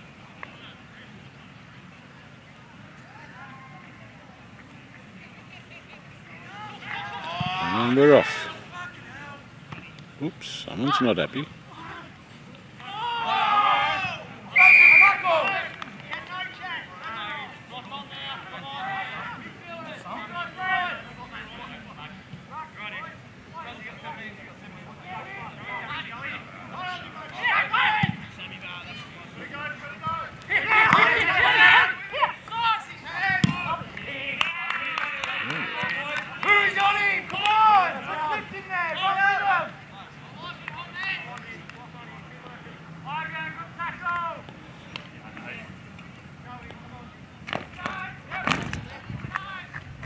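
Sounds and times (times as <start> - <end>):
people shouting: 12.8 - 15.7, 26.8 - 28.2, 30.5 - 33.7.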